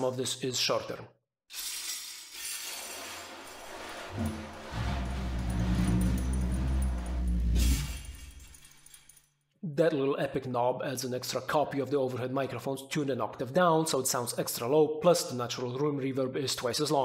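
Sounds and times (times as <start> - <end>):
low drone from rubbed drum: 3.6 - 8.5
drum jingles rattling: 4.1 - 9.3.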